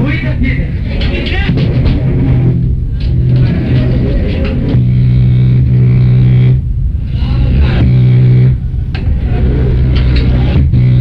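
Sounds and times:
guitar and bass chords: 0.0s - 11.0s.

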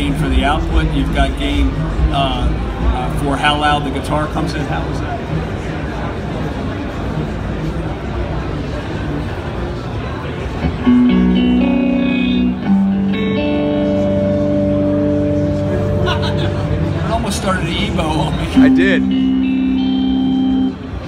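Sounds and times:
clean electric guitar chords: 10.6s - 21.0s.

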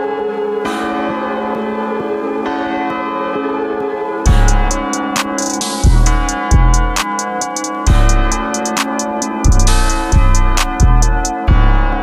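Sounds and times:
sustained melodic tones: 0.0s - 12.0s
deep bass hits: 4.3s - 4.8s, 5.8s - 7.0s, 7.9s - 8.5s, 9.5s - 12.0s
snare hit: 4.3s - 6.3s
hi-hat ticks: 4.3s - 11.3s.

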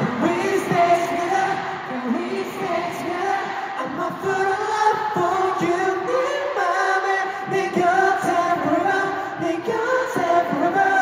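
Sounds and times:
crowd singing together: 0.0s - 11.0s.

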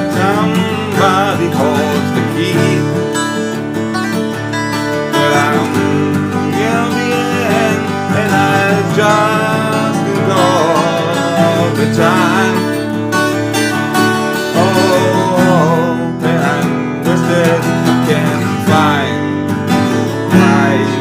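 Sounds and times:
twelve-string acoustic guitar: 0.0s - 21.0s.

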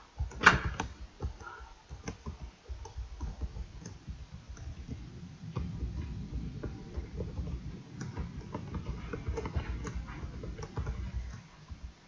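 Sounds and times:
computer keyboard typing: 0.0s - 12.0s.

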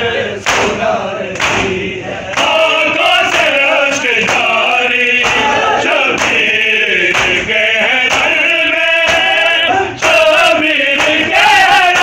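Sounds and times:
men chanting in unison: 0.0s - 12.0s.

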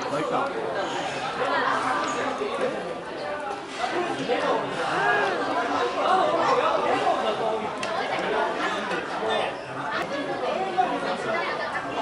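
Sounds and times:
restaurant chatter: 0.0s - 12.0s.

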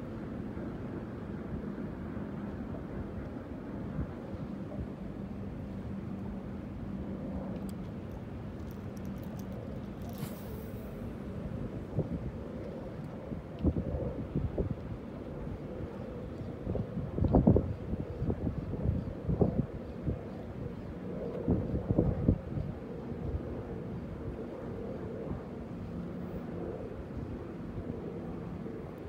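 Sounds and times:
wind buffeting microphone: 8.3s - 25.6s.

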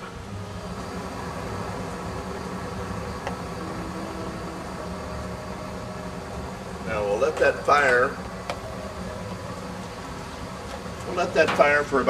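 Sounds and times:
gas burner rushing: 0.0s - 12.0s.

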